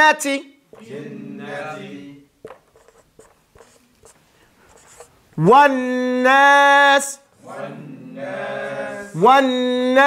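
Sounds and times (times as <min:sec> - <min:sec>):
marker squeaking on whiteboard: 0:02.4 - 0:05.2.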